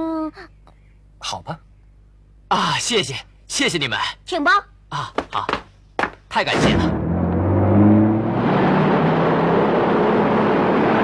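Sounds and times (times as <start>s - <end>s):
minivan engine pulling away: 6.9s - 11.0s.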